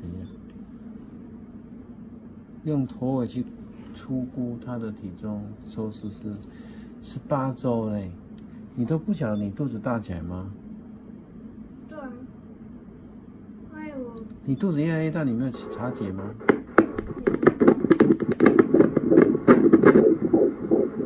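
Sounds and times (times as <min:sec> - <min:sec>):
low steady hum: 0:00.0 - 0:21.0
fetal heartbeat whooshing pulse: 0:15.6 - 0:21.0.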